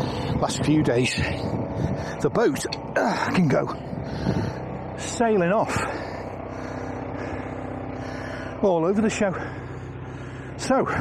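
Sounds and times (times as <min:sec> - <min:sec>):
boat engine idling: 0:00.0 - 0:11.0.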